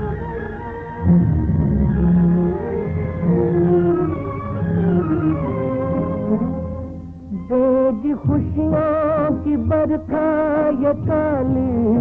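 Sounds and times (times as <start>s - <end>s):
orchestral film music: 0.0s - 11.9s.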